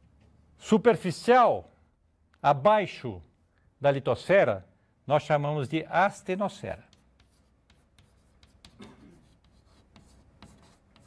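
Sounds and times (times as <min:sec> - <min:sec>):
chalk tapping and scratching: 0:06.4 - 0:11.0.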